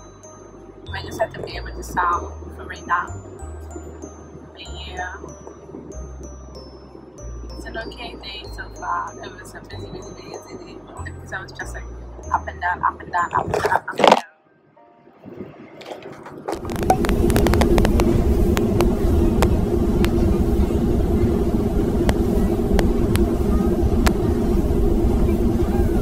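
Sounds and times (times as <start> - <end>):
low hum: 16.4 - 26.0
vehicle rumble from inside: 16.4 - 26.0
scattered clicks: 16.5 - 20.2.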